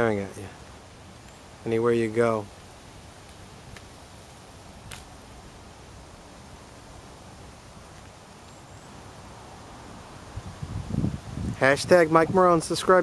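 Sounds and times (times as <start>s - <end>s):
wind on microphone: 10.1s - 12.8s.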